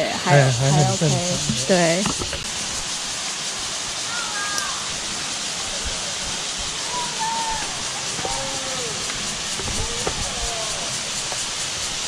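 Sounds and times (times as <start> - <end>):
creek and waterfall rushing: 0.0 - 12.0.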